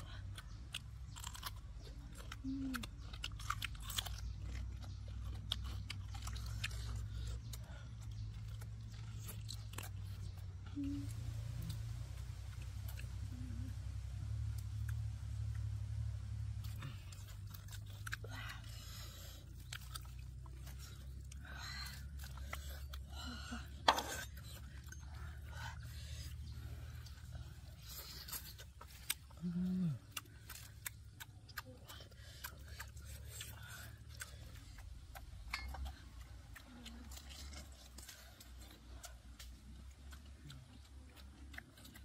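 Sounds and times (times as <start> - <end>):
chewing: 0.0 - 42.0
short low hum: 10.0 - 19.1.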